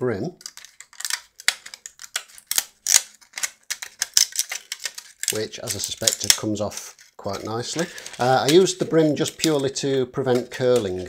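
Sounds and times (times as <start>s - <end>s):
plastic brim crackling and snapping: 0.4s - 11.0s.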